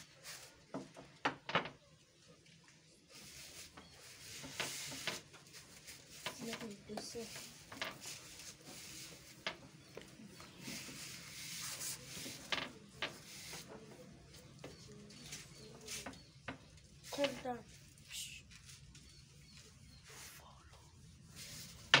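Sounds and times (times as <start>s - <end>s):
rolling pin rubbing on dough: 3.1s - 17.4s.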